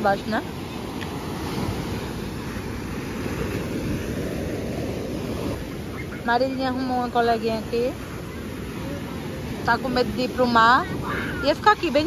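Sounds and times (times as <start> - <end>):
surf breaking on a beach: 0.0 - 12.0.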